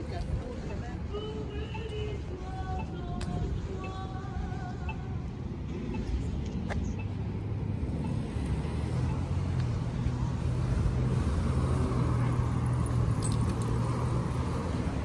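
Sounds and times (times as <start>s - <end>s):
diesel bus engine humming: 0.0s - 15.0s
street traffic: 0.0s - 15.0s.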